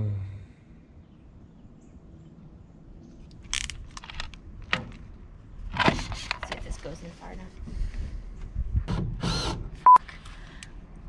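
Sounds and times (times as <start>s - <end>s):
person murmuring: 0.0s - 0.5s.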